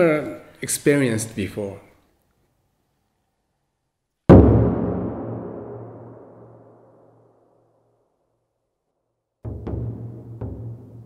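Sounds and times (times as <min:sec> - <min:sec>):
large drum strike with deep boom: 0:04.3 - 0:06.6, 0:09.5 - 0:11.0.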